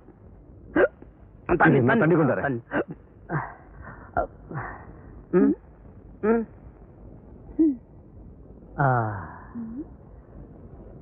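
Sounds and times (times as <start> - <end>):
man talking: 1.5 - 2.7.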